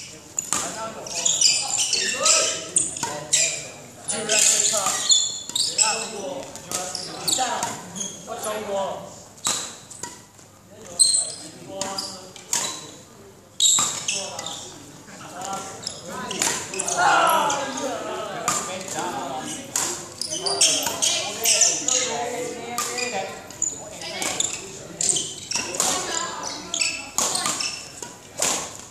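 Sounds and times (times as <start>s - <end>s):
court shoes squeaking: 0.0s - 8.7s, 9.3s - 17.8s, 18.4s - 28.9s.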